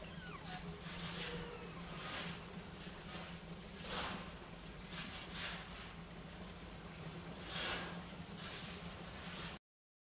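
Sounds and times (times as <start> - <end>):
steady low hum: 0.0 - 9.6
otter scratching in loose sand: 0.5 - 4.3, 4.9 - 6.0.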